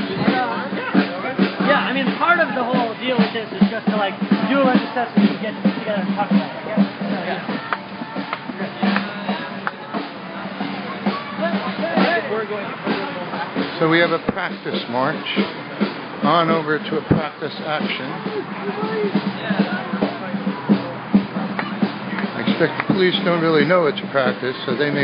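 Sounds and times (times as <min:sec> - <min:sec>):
many voices talking: 0:00.0 - 0:25.0
music with steady drum beat: 0:00.0 - 0:25.0.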